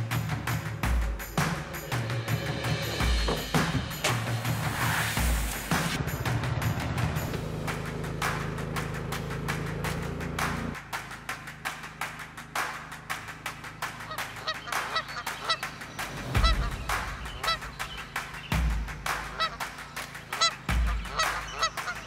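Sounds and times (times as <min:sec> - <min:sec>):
low thumps: 0:02.7 - 0:07.6
geese honking: 0:14.1 - 0:15.7, 0:16.4 - 0:18.2, 0:19.0 - 0:22.0.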